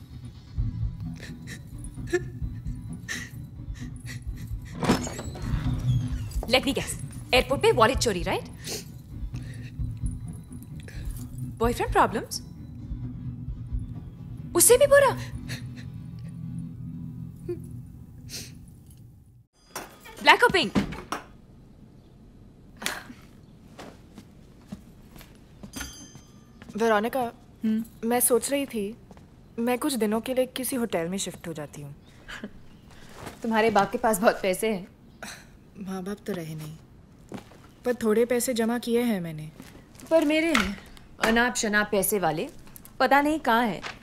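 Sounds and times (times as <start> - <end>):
soft low music: 0.0 - 19.4
woman crying and sniffing: 1.2 - 4.8.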